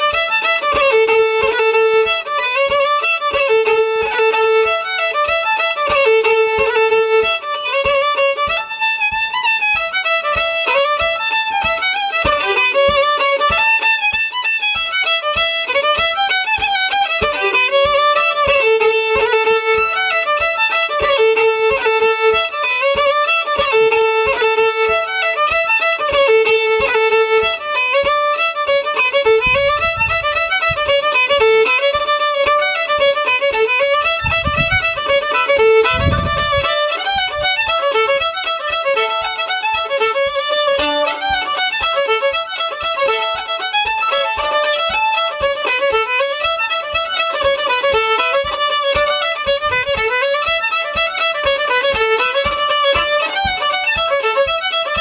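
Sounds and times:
solo fiddle dance tune: 0.0 - 55.0
low thumps: 28.4 - 38.3.

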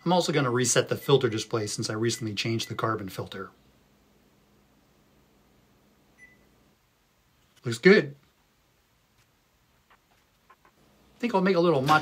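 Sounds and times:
microwave beep: 6.2 - 6.5.

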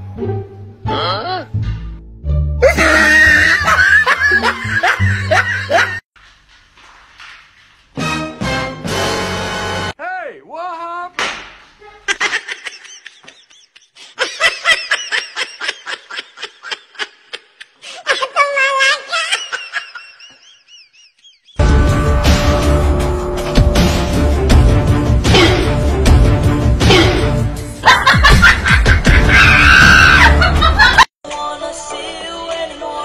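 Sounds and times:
person screaming: 2.6 - 3.8, 29.2 - 30.4
person laughing in rapid bursts: 2.6 - 6.1, 12.0 - 21.6, 27.8 - 31.1
loud music: 21.6 - 31.0.

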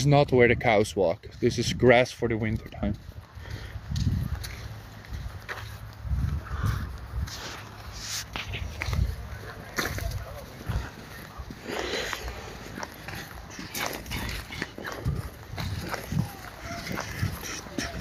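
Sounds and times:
footsteps on dirt path: 0.6 - 18.0.

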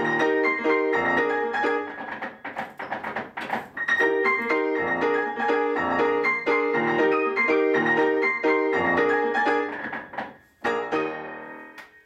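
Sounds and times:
grand piano music: 0.0 - 12.0.

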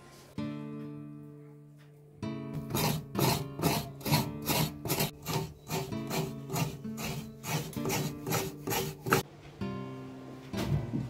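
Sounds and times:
background guitar music: 0.4 - 11.0
coconut grating rasping strokes: 2.6 - 9.2.

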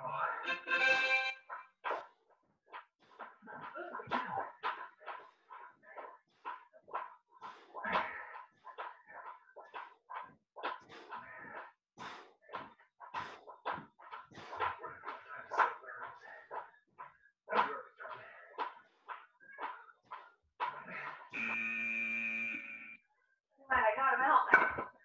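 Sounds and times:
interval timer electronic tone: 21.3 - 23.0.

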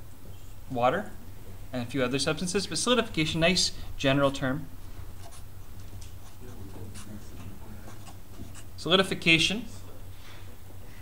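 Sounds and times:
low steady hum: 0.0 - 11.0
marker writing on paper: 5.1 - 8.9.

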